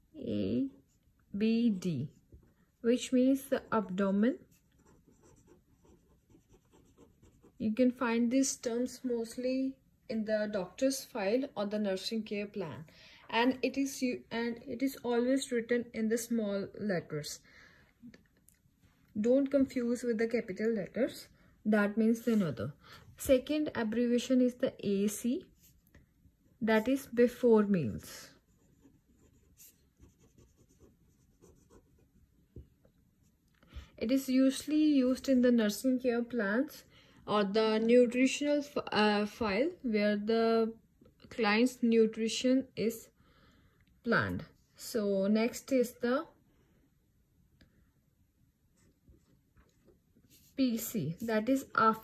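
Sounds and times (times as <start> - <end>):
pen scratching on paper: 4.3 - 7.9, 28.3 - 32.2.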